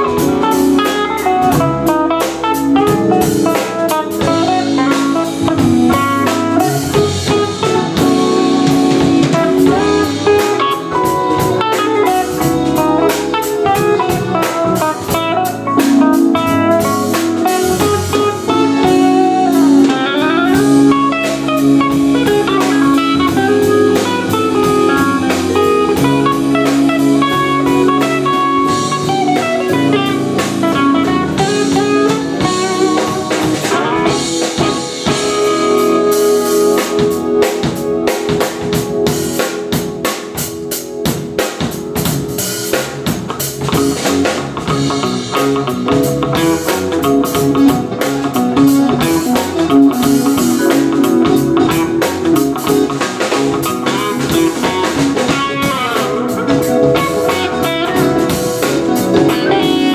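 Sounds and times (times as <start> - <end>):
electric guitar: 0.0 - 59.9
live jazz band playing: 0.0 - 59.9.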